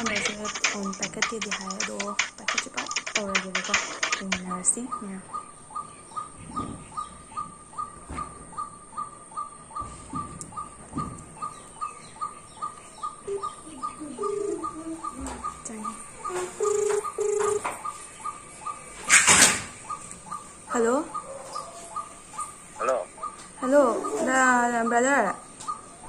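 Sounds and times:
bird chirping: 0.0 - 26.0
low cooing notes: 13.3 - 17.6.

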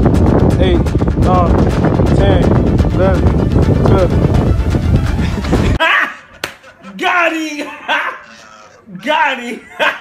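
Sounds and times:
music: 0.0 - 6.9
man exclaiming and laughing: 5.2 - 10.0
sharp slap: 6.4 - 6.6.

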